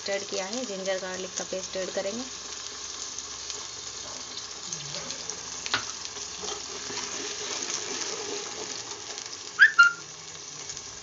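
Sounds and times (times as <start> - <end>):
frying sizzle in hot oil: 0.0 - 11.0.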